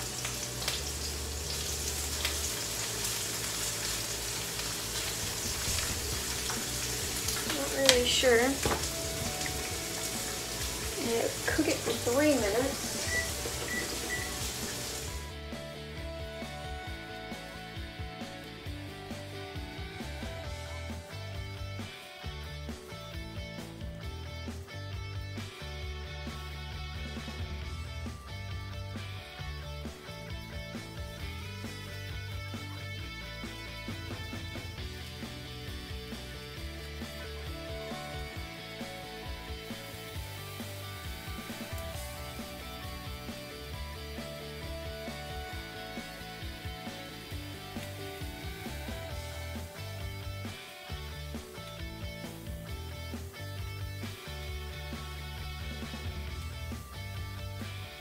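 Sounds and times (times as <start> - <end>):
background music with bass line: 0.0 - 58.0.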